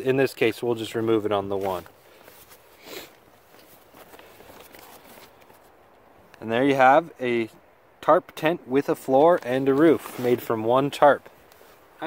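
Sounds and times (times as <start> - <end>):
plastic tarp rustling: 3.4 - 5.7, 9.4 - 10.7.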